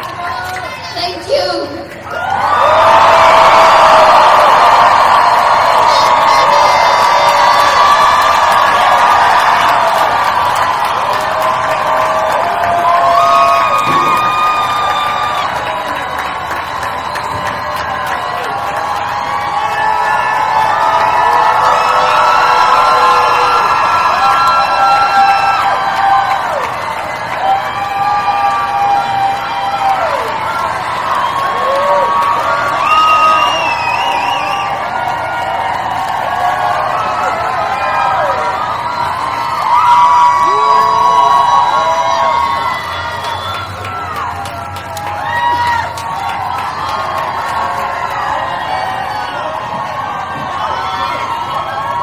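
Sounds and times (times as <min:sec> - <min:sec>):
crowd cheering and whooping: 0:00.0 - 0:52.0.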